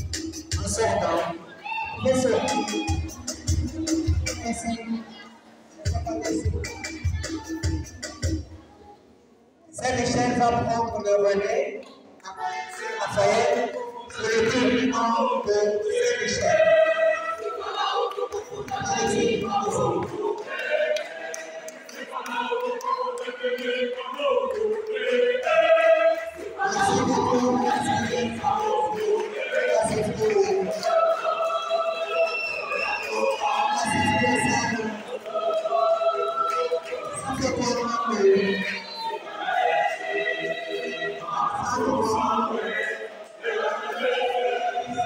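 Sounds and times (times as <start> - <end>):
choir singing unaccompanied: 0.0 - 5.0, 12.2 - 45.0.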